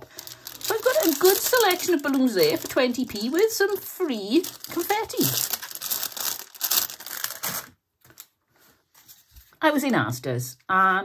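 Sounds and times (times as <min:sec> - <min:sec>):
plastic bags crinkling: 0:00.0 - 0:08.3.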